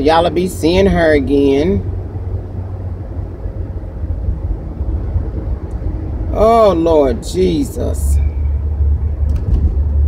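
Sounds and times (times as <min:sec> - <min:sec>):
engine and road rumble inside car: 0:00.0 - 0:10.0.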